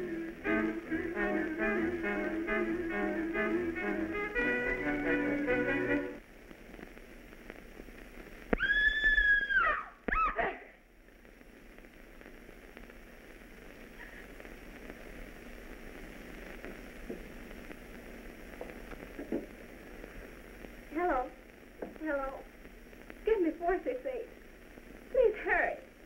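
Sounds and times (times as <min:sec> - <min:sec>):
brass notes: 0:00.0 - 0:06.2
film soundtrack hiss: 0:00.0 - 0:26.0.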